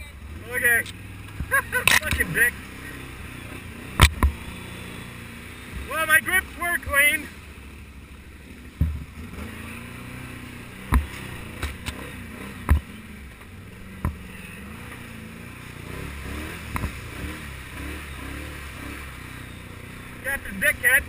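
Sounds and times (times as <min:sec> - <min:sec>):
atv engine running: 0:00.0 - 0:21.0.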